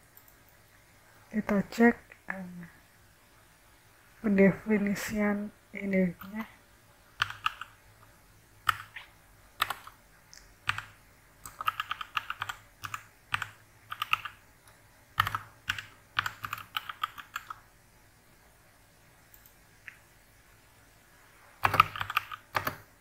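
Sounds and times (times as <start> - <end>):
computer keyboard typing: 6.2 - 6.5, 7.2 - 7.8, 8.6 - 10.0, 10.6 - 17.6, 21.6 - 22.9.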